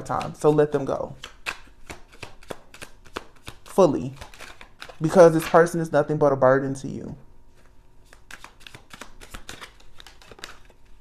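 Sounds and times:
cards being shuffled: 0.0s - 5.8s, 7.5s - 11.0s.

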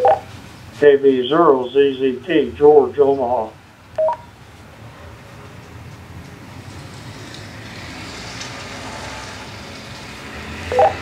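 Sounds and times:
radio hiss with low hum: 0.8s - 3.6s.

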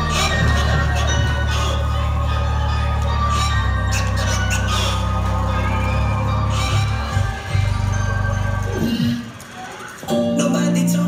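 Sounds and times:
deep bass notes: 0.0s - 8.9s.

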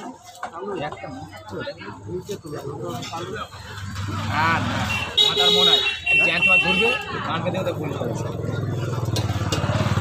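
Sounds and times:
people talking: 0.0s - 9.1s
vehicle engine running: 7.3s - 10.0s.

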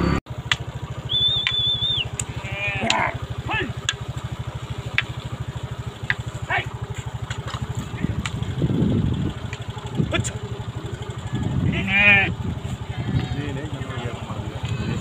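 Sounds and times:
motorcycle engine idling: 0.0s - 15.0s
sheep bleating: 2.2s - 3.2s, 10.7s - 15.0s.

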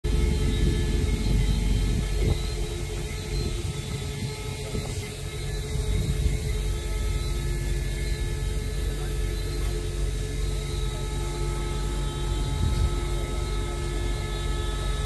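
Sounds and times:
low rumble: 0.0s - 15.0s
mechanical hum: 0.0s - 15.0s.

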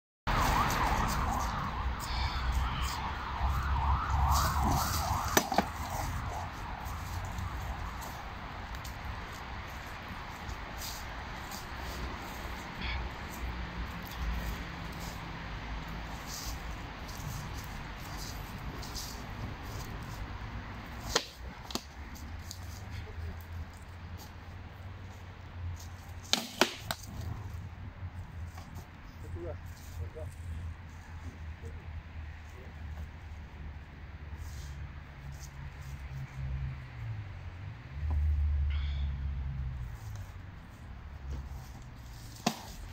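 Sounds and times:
wavering siren: 0.3s - 9.7s.

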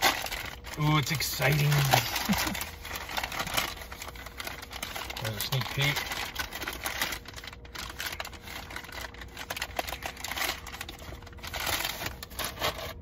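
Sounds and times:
plastic mailer bag crinkling: 0.0s - 13.0s.

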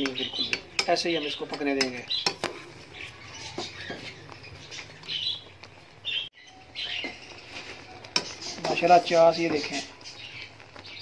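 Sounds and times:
spatula clicking against pot: 0.0s - 2.5s
syrup boiling in a pot: 7.0s - 11.0s.

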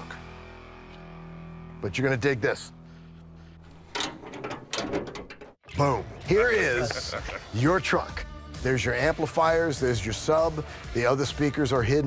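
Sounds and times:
trunk latch release: 3.8s - 5.5s.

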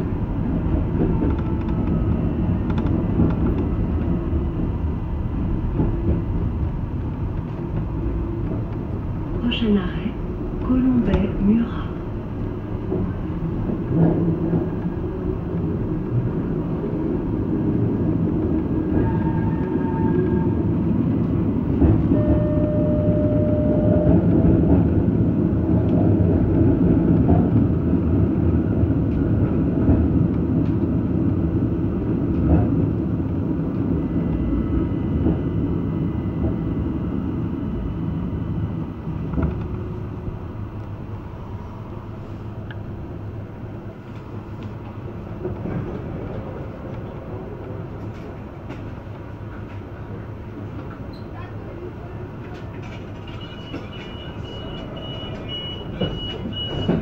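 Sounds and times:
railcar wheels and motors rumbling: 0.0s - 57.0s.

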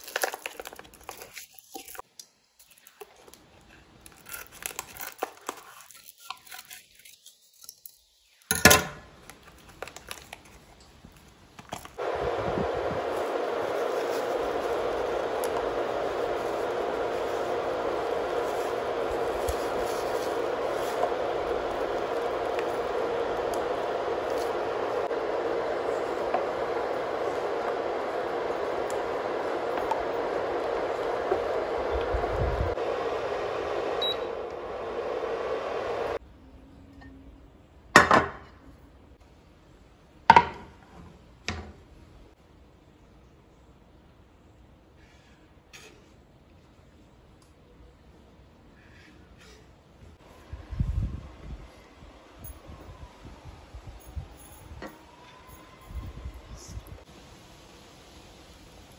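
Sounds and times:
cooktop fan whir: 8.5s - 39.2s, 46.8s - 58.9s.

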